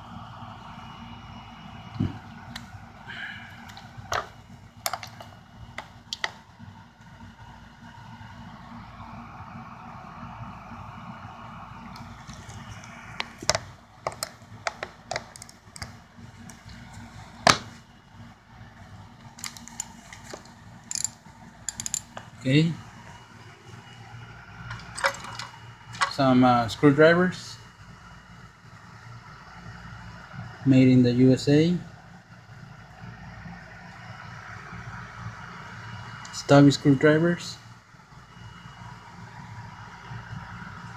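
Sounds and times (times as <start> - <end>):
steady low hum: 0.0 - 40.9.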